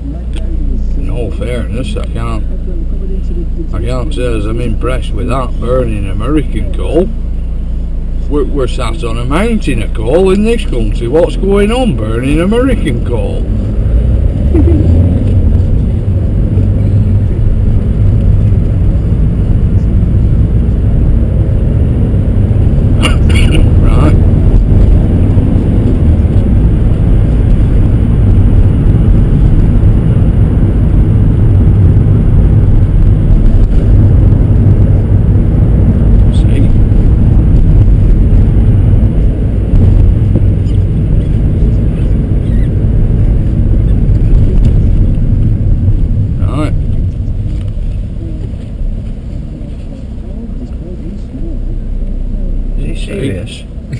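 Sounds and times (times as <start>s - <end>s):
car engine and tyres rumbling: 0.0s - 53.9s.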